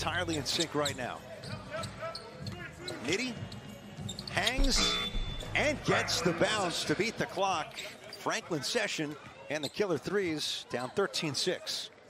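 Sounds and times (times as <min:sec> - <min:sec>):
faint arena crowd noise: 0:00.0 - 0:12.0.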